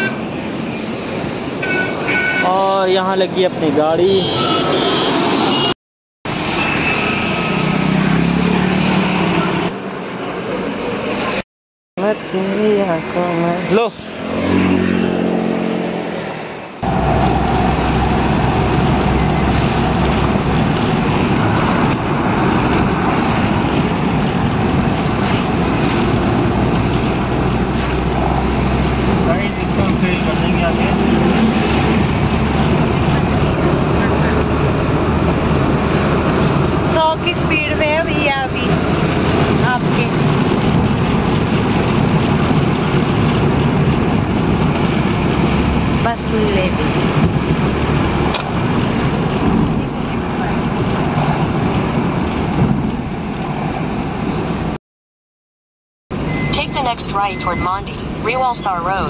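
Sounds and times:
wind: 0.0s - 11.4s, 12.0s - 54.8s, 56.1s - 59.0s
car road and engine noise: 0.0s - 54.8s, 56.1s - 59.0s.

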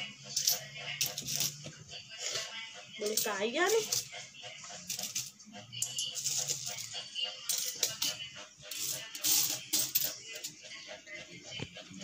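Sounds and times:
coins clinking and clattering: 0.4s - 1.6s, 4.9s - 6.9s, 7.5s - 8.1s, 8.7s - 10.5s.

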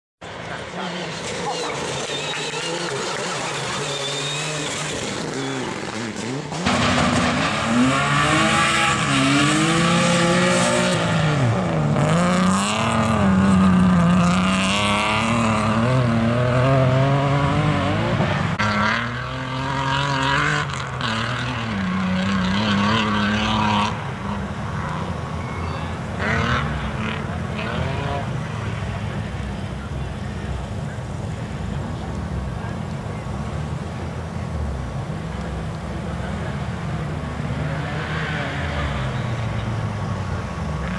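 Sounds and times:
rally car engine revving: 0.2s - 40.9s.

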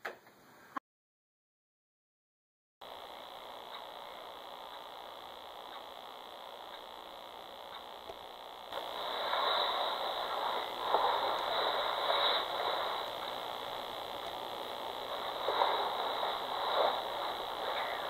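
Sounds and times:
electronic static with high whine: 2.8s - 18.0s
rough noise over hiss: 2.8s - 18.0s.

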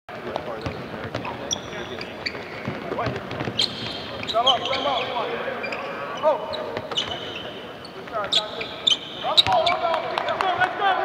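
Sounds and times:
sneakers squeaking: 0.2s - 10.6s.

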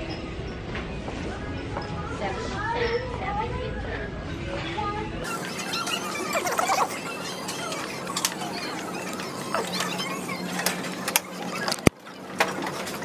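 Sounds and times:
steady background hum: 0.0s - 13.0s.

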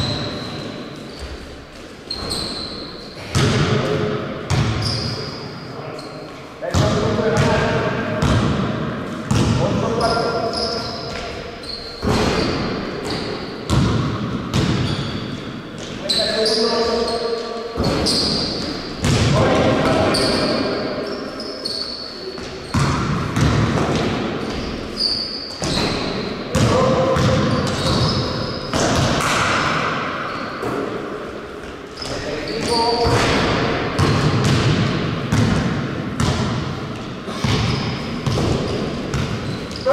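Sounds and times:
echoing gym hall noise: 0.0s - 39.9s.

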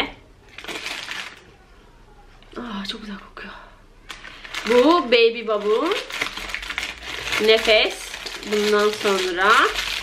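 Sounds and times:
paper wrapper rustling: 0.5s - 1.5s, 4.1s - 10.0s.

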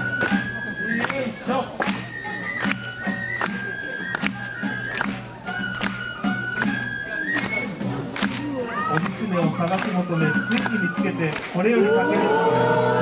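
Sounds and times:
bamboo flute long notes: 0.0s - 8.0s, 9.6s - 13.0s
crowd voices: 0.0s - 13.0s.

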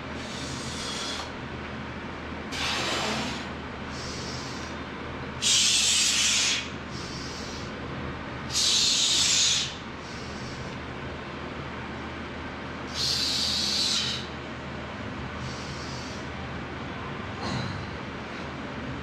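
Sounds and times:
steady low hum: 0.0s - 19.0s
man breathing forcefully: 0.2s - 1.4s, 2.5s - 4.8s, 5.4s - 7.7s, 8.5s - 10.8s, 12.9s - 14.4s, 15.4s - 16.3s.

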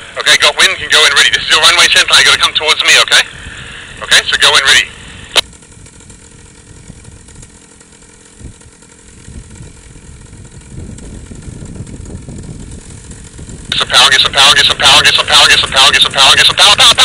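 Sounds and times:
paramotor engine idling: 0.0s - 17.0s.

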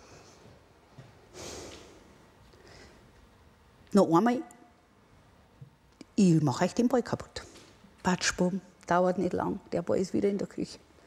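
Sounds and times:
woman breathing: 1.3s - 3.2s.

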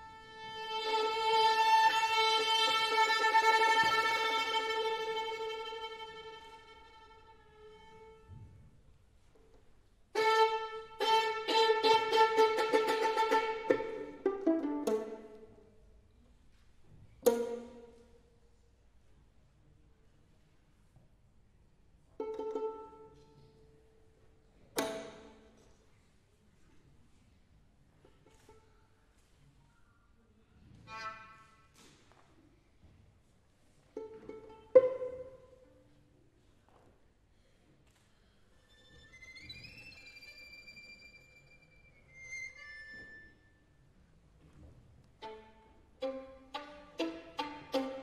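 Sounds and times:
violin pizzicato pluck: 0.0s - 8.1s, 10.2s - 15.7s, 17.2s - 18.1s, 22.2s - 23.5s, 24.8s - 25.5s, 34.0s - 35.7s, 45.2s - 48.0s.

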